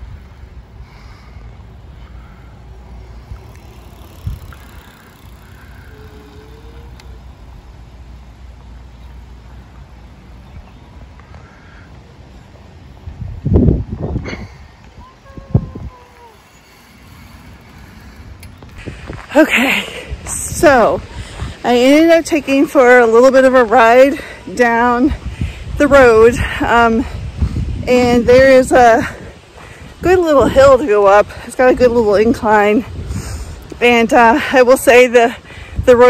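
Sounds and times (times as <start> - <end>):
wind on microphone: 0.0 - 7.8, 12.9 - 36.0.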